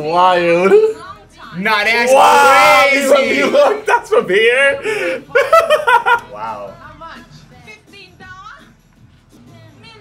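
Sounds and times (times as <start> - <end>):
men laughing: 3.1 - 6.7.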